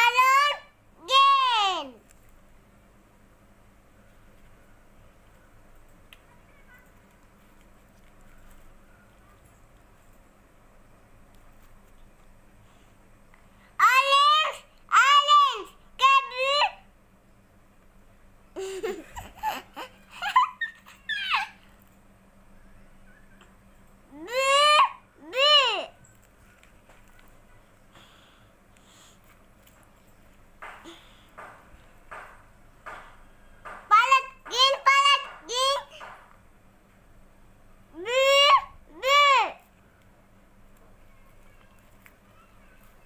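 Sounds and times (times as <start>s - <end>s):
child calling out: 0.0s - 2.0s, 13.8s - 16.8s, 24.1s - 26.0s, 33.9s - 36.0s, 37.9s - 39.7s, 41.0s - 43.0s
small child squealing and calling: 38.0s - 39.6s.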